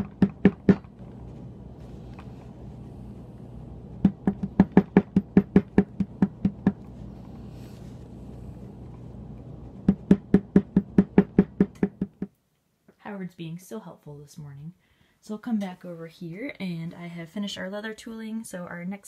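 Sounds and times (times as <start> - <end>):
mallet tapping leather stamping tool: 0.0 - 0.9, 4.0 - 6.9, 9.8 - 12.3.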